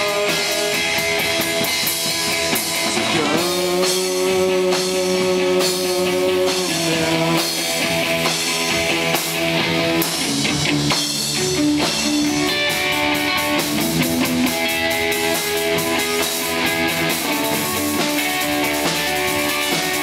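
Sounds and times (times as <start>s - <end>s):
bass guitar: 0.0s - 20.0s
drum kit with cymbals: 0.0s - 20.0s
electric guitar: 0.0s - 20.0s.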